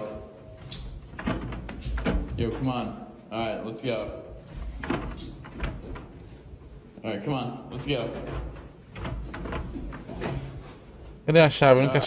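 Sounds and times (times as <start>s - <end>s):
door latch and handle clicking: 0.6s - 2.4s, 4.5s - 6.2s.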